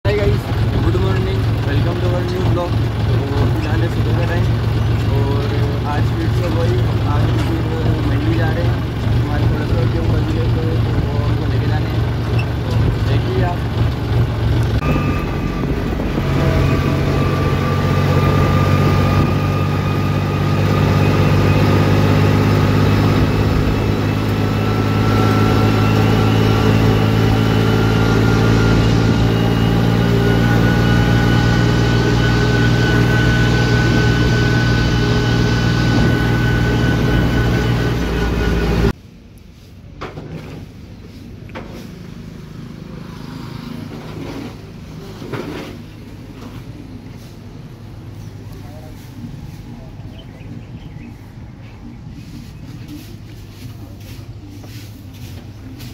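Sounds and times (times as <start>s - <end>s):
tractor diesel engine running: 0.0s - 55.9s.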